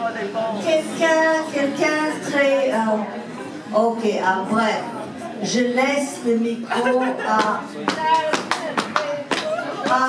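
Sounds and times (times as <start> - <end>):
handclaps: 7.4 - 10.0.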